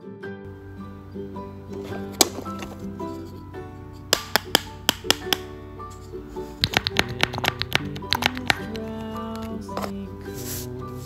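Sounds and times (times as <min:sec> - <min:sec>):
background music: 0:00.0 - 0:11.0
brush tapping in paper bowl: 0:04.1 - 0:05.5, 0:06.6 - 0:10.5.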